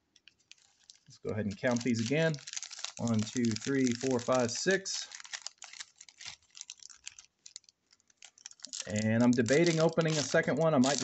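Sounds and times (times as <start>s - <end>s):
foil card packs crinkling: 0.2s - 11.0s.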